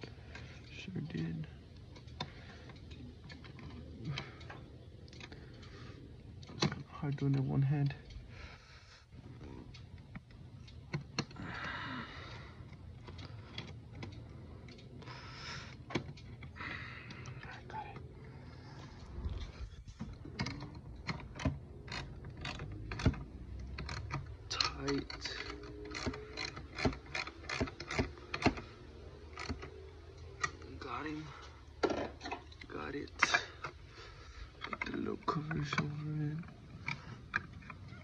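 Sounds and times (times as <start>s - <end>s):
small metal clicks and taps: 19.0s - 38.0s
ratchet wrench clicking: 21.0s - 28.6s.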